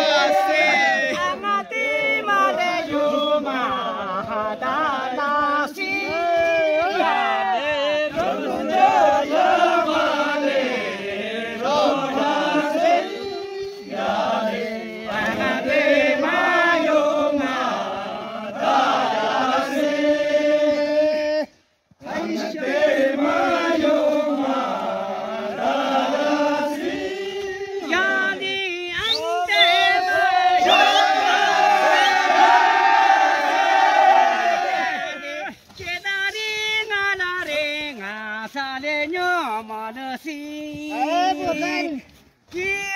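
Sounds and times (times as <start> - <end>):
group of voices singing folk song: 0.0 - 42.9.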